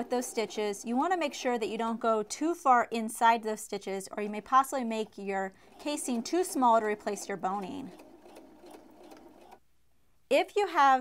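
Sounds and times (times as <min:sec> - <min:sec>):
sewing machine running: 0:00.0 - 0:01.5, 0:05.0 - 0:09.6.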